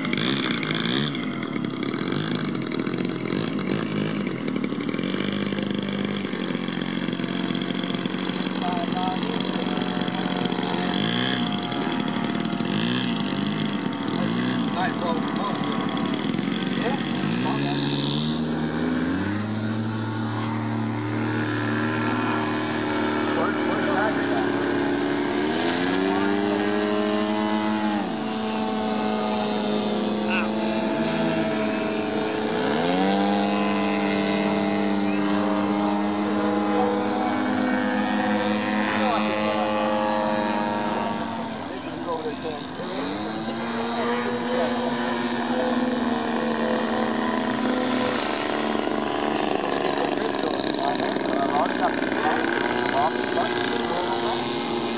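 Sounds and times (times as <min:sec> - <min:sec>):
model airplane motor and propeller: 0:00.0 - 0:54.9.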